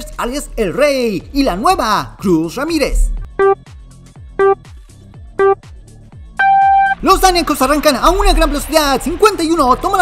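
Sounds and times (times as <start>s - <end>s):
background music: 0.0s - 10.0s
electronic countdown beeps: 3.3s - 3.7s, 4.4s - 4.7s, 5.4s - 5.7s, 6.4s - 7.0s.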